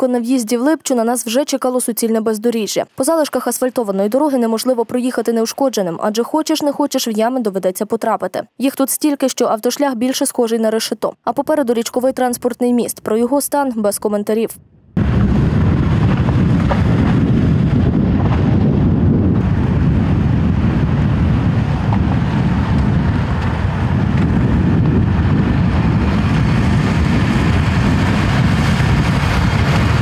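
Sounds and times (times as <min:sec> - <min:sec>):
minibus driving on potholed road: 0:00.0 - 0:14.4, 0:15.0 - 0:30.0
wind rumble on microphone: 0:14.6 - 0:30.0
cars driving: 0:19.3 - 0:30.0.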